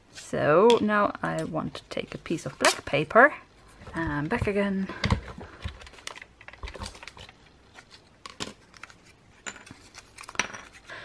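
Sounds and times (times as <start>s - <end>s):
paper and plastic rustling: 3.8s - 11.0s.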